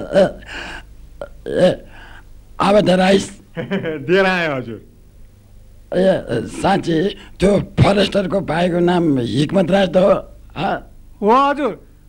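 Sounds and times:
breath: 0.5 - 0.9, 1.9 - 2.3.

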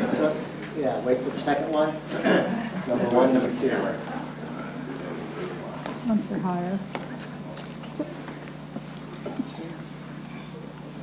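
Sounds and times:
steady low hum: 0.0 - 11.0
faint murmured voices: 2.0 - 11.0.

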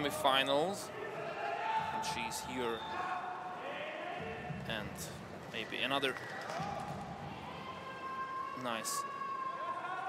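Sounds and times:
indoor pool arena hum: 0.0 - 10.0
referee's long whistle: 2.6 - 3.2.

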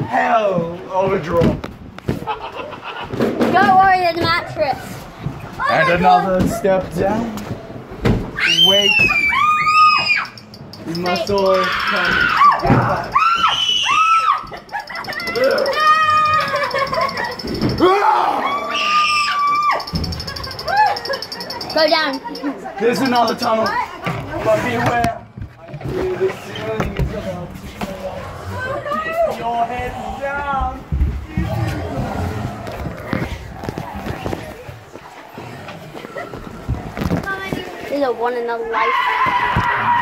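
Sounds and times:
indistinct voices: 3.4 - 40.0.

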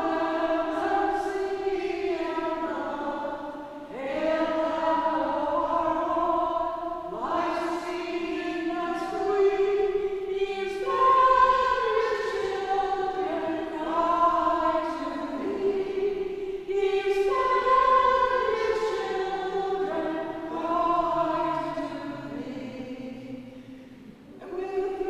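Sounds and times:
woman singing religious song: 0.0 - 25.0.

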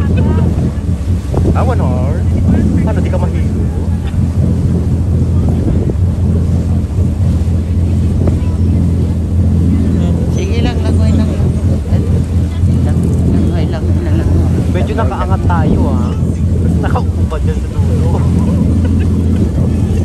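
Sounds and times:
boat engine droning: 0.0 - 20.0
wind buffeting microphone: 0.0 - 20.0.

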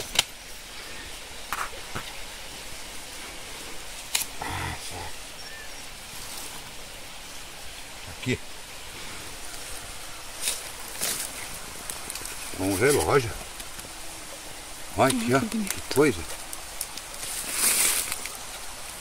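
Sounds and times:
steady background hiss: 0.0 - 19.0
hand scraping in soil: 17.1 - 18.4.

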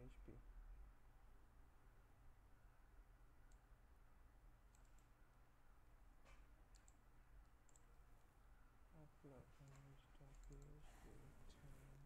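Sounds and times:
mouse and keyboard clicks: 4.7 - 5.1, 6.2 - 7.0, 7.6 - 7.9, 9.6 - 10.8.

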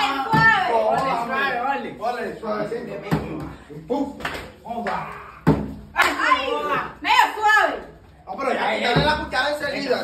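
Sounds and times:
excited voices: 0.0 - 2.0, 3.3 - 8.9.

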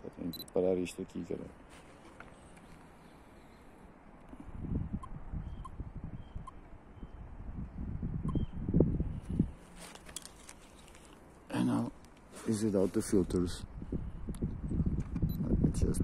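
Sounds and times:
camera handling thumps and rubbing: 9.7 - 11.2.

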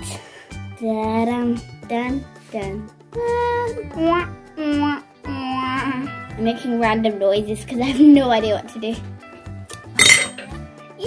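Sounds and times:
jingle bell dropping on a tabletop: 10.0 - 10.5.

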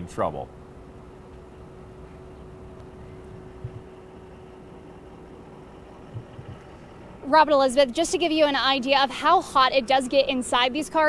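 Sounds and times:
faint steady hum: 0.0 - 11.0
low outdoor rumble: 0.0 - 11.0
faint knocks: 2.8 - 3.9, 6.1 - 6.8.

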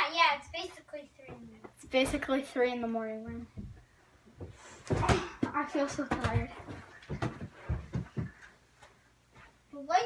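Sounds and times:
dull thumps of children running: 4.4 - 8.5.

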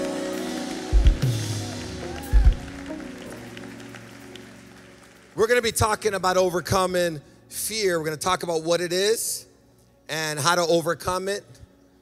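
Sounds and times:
church praise music chord: 0.0 - 11.6.

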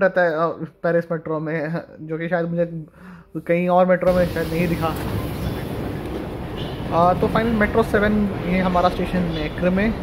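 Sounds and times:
metro train wheels and motors: 4.1 - 10.0.

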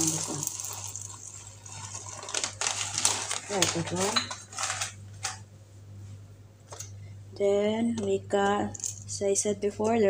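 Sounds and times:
peppercorns rattling in plastic grinder: 0.0 - 5.0.

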